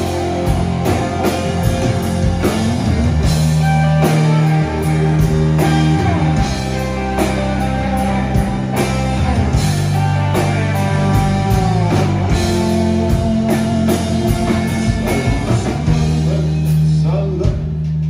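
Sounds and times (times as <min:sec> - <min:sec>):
electric guitars: 0:00.0 - 0:17.6
bass guitar: 0:00.0 - 0:18.0
drum kit beat: 0:00.0 - 0:18.0.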